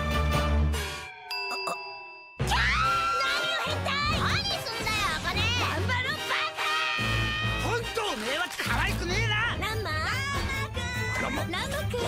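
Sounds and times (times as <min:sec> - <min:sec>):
upbeat music: 0:00.0 - 0:12.0.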